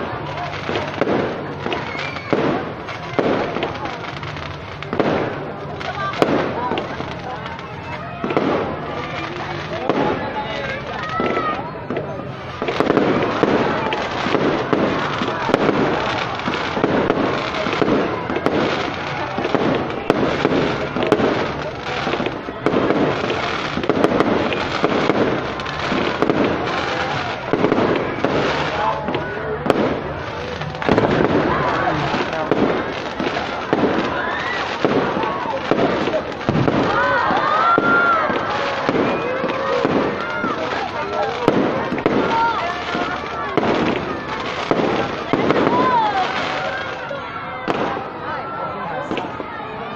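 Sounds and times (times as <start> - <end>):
fireworks bangs and crackling: 0.0 - 49.9
people's voices: 0.0 - 49.9.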